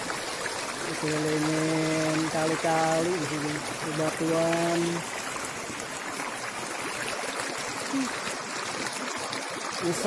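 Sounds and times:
stream running over rocks: 0:00.0 - 0:10.0.

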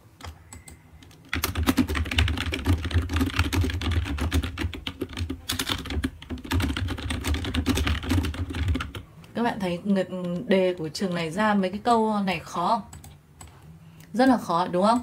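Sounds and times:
fast typing on keyboard: 0:00.2 - 0:09.0.

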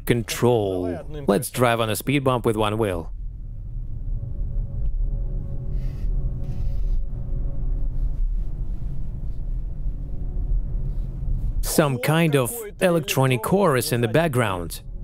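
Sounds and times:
steady low rumble: 0:00.0 - 0:15.0
ambient electronic music: 0:03.1 - 0:15.0.

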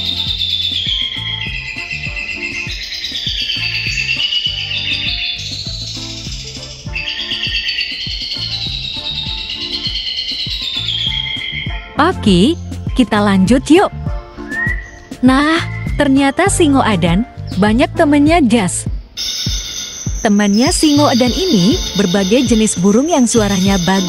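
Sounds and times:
background music with low beat: 0:00.0 - 0:24.0
songbirds warbling: 0:00.0 - 0:24.0.

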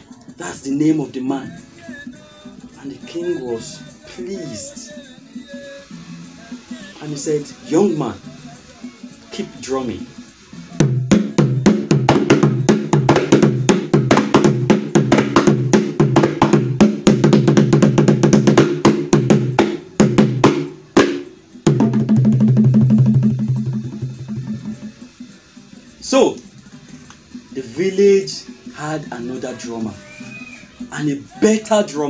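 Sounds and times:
fast drumming: 0:10.8 - 0:25.0.

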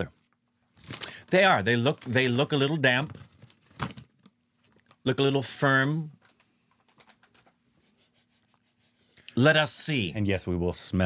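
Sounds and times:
plastic snack packet crinkling: 0:00.8 - 0:05.0.

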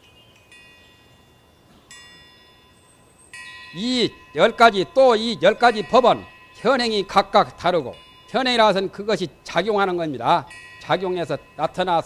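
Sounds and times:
metal chimes ringing: 0:00.0 - 0:12.0.

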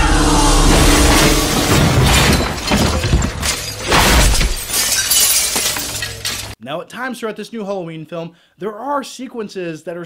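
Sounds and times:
glass shattering: 0:00.7 - 0:06.6.

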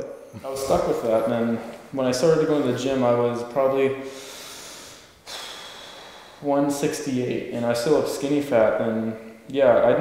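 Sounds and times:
man breathing: 0:04.0 - 0:06.6.

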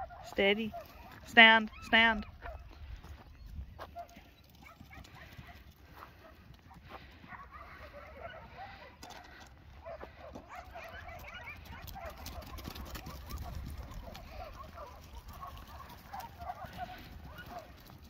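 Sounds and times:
animal calls: 0:03.8 - 0:17.9.

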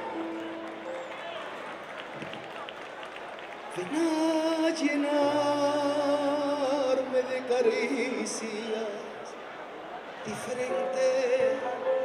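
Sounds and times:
held keyboard chord: 0:00.0 - 0:01.9, 0:10.5 - 0:12.0
audience murmur and voices: 0:00.0 - 0:12.0.

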